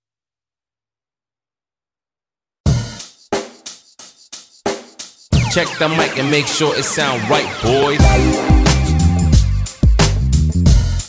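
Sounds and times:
hip-hop music: 0:05.3 - 0:11.0
drum kit hits with cymbal: 0:08.0 - 0:11.0.

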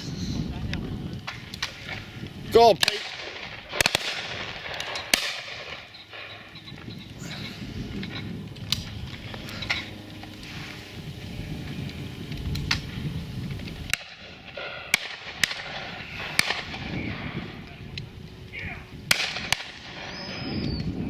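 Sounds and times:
shotgun shots: 0:02.8 - 0:06.4, 0:13.9 - 0:17.1, 0:19.1 - 0:20.1.

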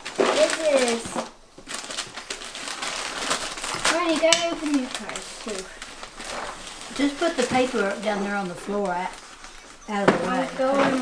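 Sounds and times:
wrapping paper crinkling: 0:00.0 - 0:11.0.

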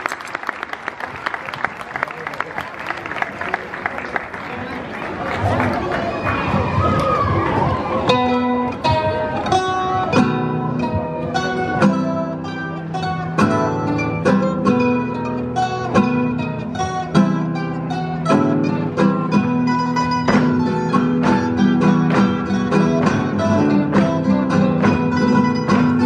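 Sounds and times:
crowd murmur: 0:00.0 - 0:26.0
plucked string band dance tune: 0:08.1 - 0:26.0.

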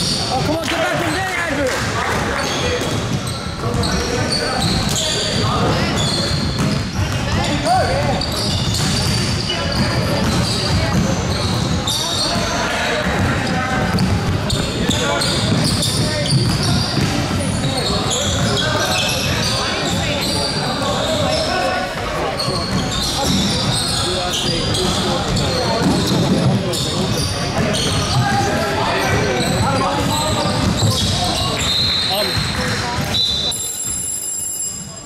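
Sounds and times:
sneakers squeaking: 0:00.0 - 0:01.6, 0:02.2 - 0:35.0
basketball bouncing on hardwood: 0:06.4 - 0:11.8, 0:12.4 - 0:17.4.

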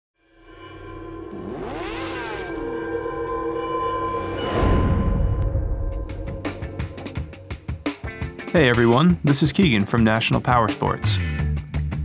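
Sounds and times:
synthesized drone: 0:00.2 - 0:08.0
sweeping tones rising and falling: 0:00.4 - 0:07.4.

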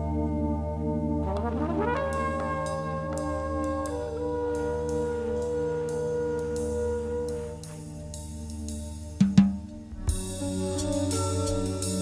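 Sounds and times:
quiet held jazz chords: 0:00.0 - 0:12.0.

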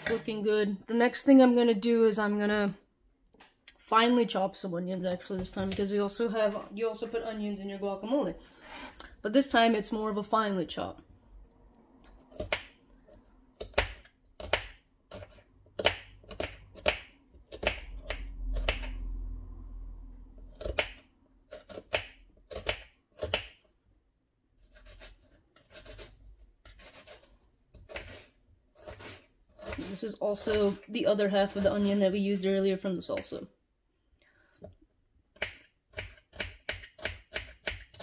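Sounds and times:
knife chopping onion on board: 0:13.6 - 0:18.9, 0:35.4 - 0:38.0.

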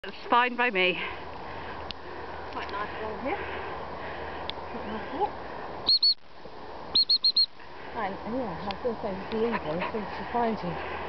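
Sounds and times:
dog whistle pips: 0:05.9 - 0:06.2, 0:07.0 - 0:07.5.

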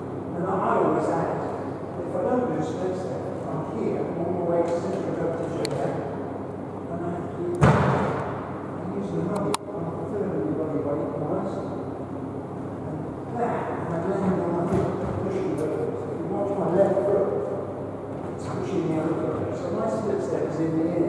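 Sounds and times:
loud thud: 0:07.6 - 0:08.2.

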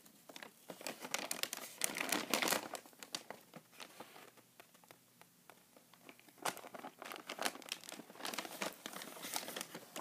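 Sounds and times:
paper bag crinkling: 0:00.3 - 0:04.4, 0:06.1 - 0:10.0.

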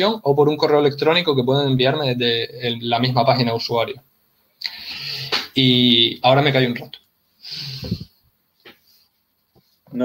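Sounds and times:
person breathing into microphone: 0:04.6 - 0:05.5, 0:07.4 - 0:08.2.

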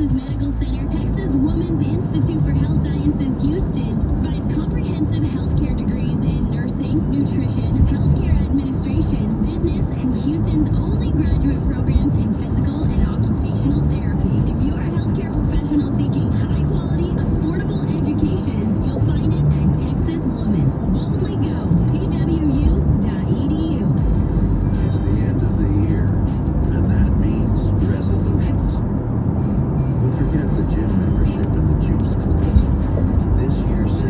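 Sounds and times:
car radio song with vocals: 0:00.0 - 0:34.0
road and engine noise: 0:00.0 - 0:34.0.

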